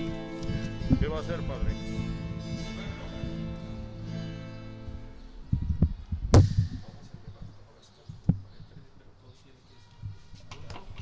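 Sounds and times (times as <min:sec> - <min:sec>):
sharp knock on audio gear: 0:06.4 - 0:06.9.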